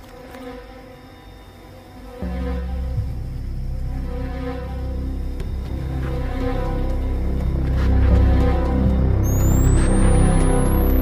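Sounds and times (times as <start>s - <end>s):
low buzzing hum: 0.0s - 11.0s.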